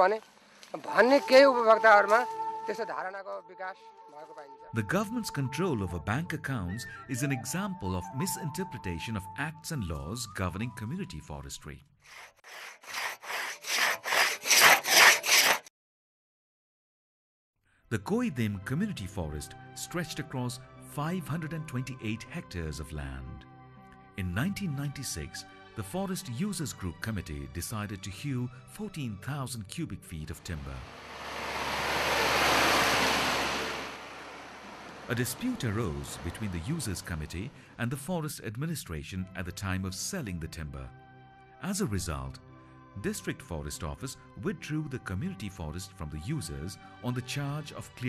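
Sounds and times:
hand saw cutting wood: 0:12.1 - 0:15.7
rushing noise: 0:30.4 - 0:37.6.

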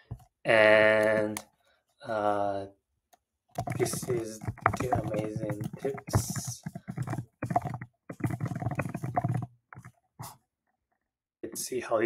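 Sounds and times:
typing on laptop keyboard: 0:03.6 - 0:10.0.

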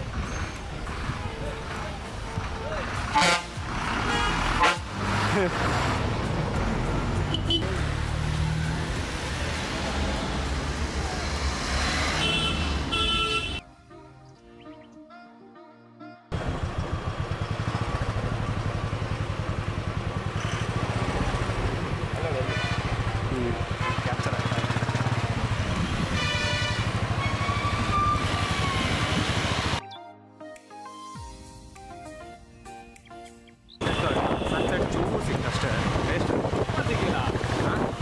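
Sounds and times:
bus horn honks: 0:03.1 - 0:05.0, 0:07.3 - 0:07.7, 0:12.2 - 0:13.6, 0:22.5 - 0:23.0, 0:26.0 - 0:29.0, 0:33.8 - 0:34.9
soft music: 0:13.6 - 0:16.4, 0:29.8 - 0:33.8
bus engine running: 0:16.3 - 0:29.8.

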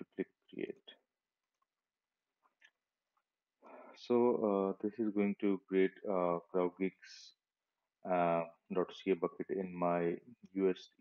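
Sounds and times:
speech: 0:00.0 - 0:00.9, 0:03.9 - 0:07.4, 0:08.0 - 0:11.0.

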